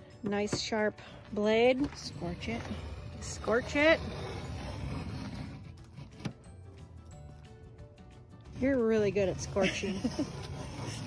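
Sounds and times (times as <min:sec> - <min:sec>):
background music: 0:00.0 - 0:11.0
utility knife scratching board: 0:01.6 - 0:06.4, 0:08.5 - 0:11.0.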